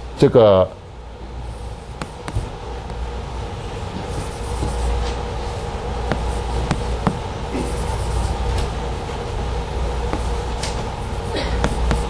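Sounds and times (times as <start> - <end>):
low room hum: 0.0 - 12.0
chalk tapping on blackboard: 2.0 - 2.5, 4.0 - 5.2, 6.1 - 8.4, 10.1 - 10.4, 11.1 - 12.0
chalk scratching on blackboard: 4.0 - 8.4, 10.1 - 12.0.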